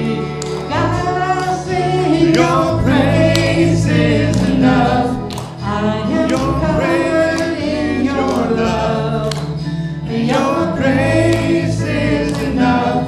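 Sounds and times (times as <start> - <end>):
group singing worship song: 0.0 - 13.0
instrumental accompaniment: 0.0 - 13.0.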